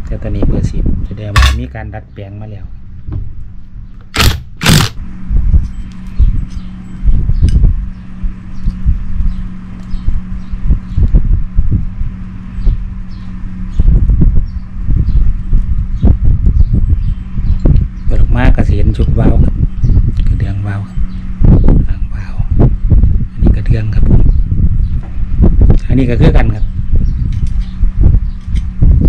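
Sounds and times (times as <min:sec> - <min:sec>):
steady low hum: 0:00.0 - 0:29.0
knocks and handling noise: 0:01.3 - 0:01.7
tools set down: 0:01.4 - 0:01.6
cordless impact driver bursts: 0:04.2 - 0:05.0.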